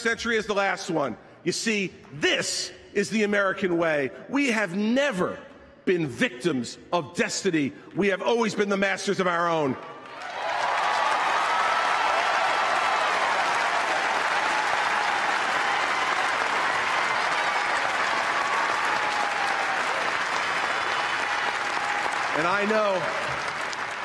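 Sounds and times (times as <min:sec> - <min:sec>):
crowd applauding: 0:10.0 - 0:24.0
voices cheering: 0:10.1 - 0:24.0.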